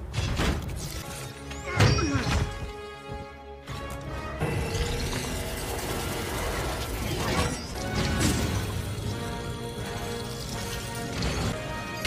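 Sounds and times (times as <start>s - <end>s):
orchestral music: 0.9s - 12.0s.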